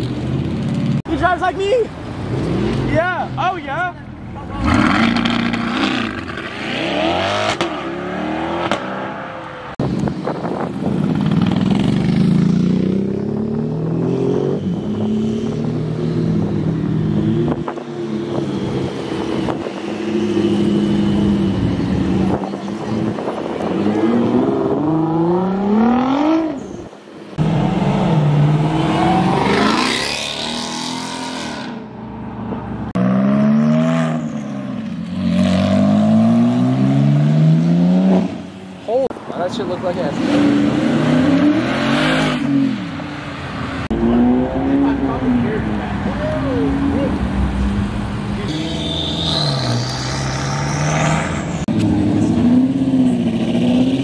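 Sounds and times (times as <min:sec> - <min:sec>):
sports car engines revving: 0:01.9 - 0:54.0.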